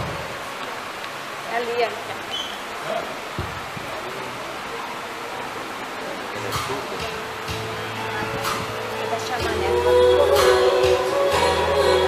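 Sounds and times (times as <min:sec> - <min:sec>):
hall room noise hiss: 0:00.0 - 0:12.0
live music strums: 0:06.5 - 0:12.0.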